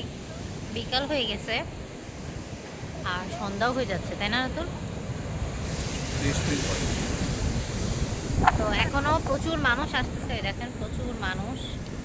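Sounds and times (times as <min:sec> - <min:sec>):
surf washing on beach: 0:00.0 - 0:12.0
wind buffeting microphone: 0:00.0 - 0:12.0.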